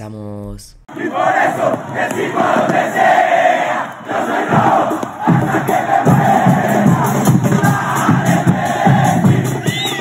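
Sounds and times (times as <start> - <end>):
stadium crowd chanting and cheering: 0.9 - 10.0
music: 4.0 - 10.0.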